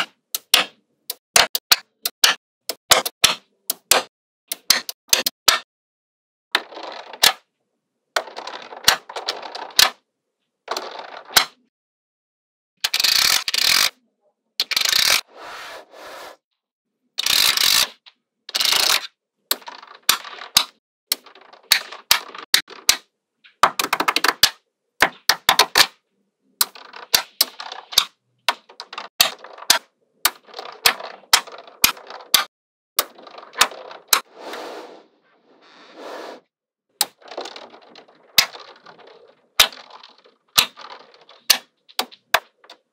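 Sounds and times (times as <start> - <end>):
magnet balls rattling and clicking: 6.6 - 7.5, 8.2 - 10.0, 12.8 - 14.0, 14.6 - 15.3, 17.2 - 26.0, 26.6 - 34.3, 37.0 - 42.9.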